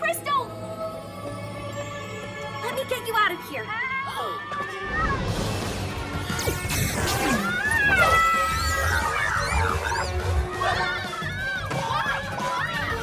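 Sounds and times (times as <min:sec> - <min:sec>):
action music: 0:04.8 - 0:13.0.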